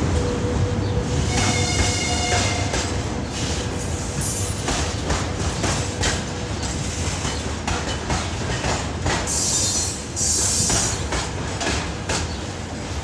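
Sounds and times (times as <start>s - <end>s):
freight train rumbling past: 0.0s - 13.0s.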